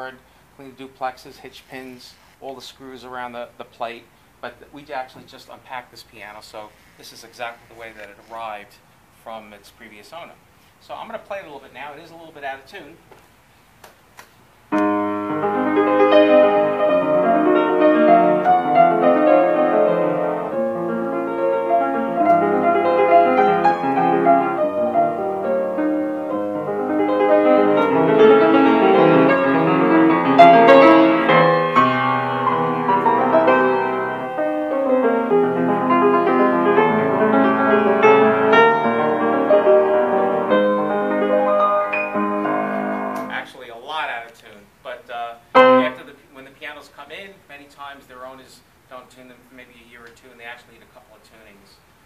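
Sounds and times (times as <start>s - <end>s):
out of tune piano chords and melody: 14.7s - 43.5s, 45.5s - 46.1s.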